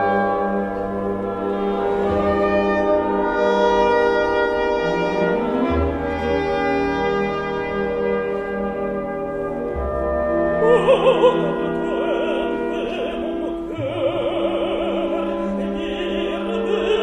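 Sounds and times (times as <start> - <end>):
orchestra playing sustained chords: 0.0 - 17.0.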